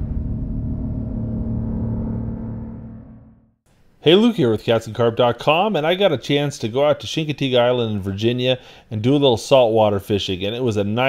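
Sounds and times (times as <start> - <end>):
low gong-like ringing tone: 0.0 - 3.4
impact hit: 0.0 - 3.6.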